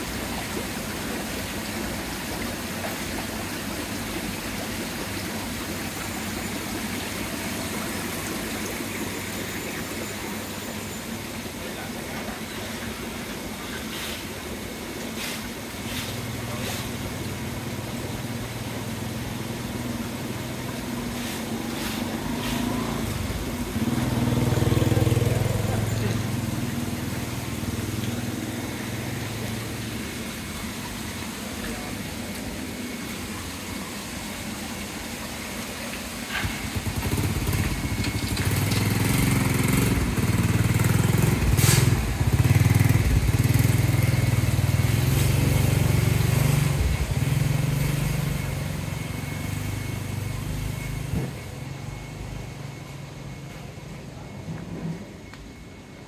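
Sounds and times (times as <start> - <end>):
motorbike engine hum: 22.1 - 30.3, 36.3 - 52.6
motor scooter passing by: 23.8 - 27.3.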